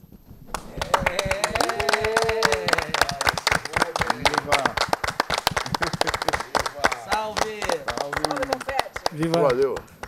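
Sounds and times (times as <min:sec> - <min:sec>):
people applauding: 0:00.5 - 0:10.0.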